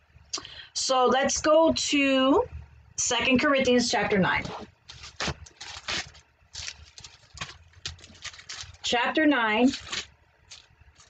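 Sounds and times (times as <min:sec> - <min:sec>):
pages being leafed through: 0:04.4 - 0:08.9, 0:09.6 - 0:11.0.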